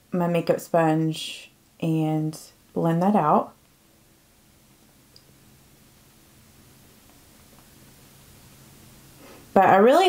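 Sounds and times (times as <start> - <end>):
steady low hum: 0.0 - 10.0
faint hiss: 1.1 - 10.0.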